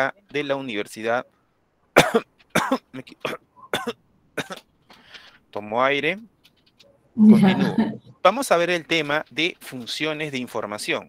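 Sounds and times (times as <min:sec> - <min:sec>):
man coughing: 0:02.0 - 0:04.6.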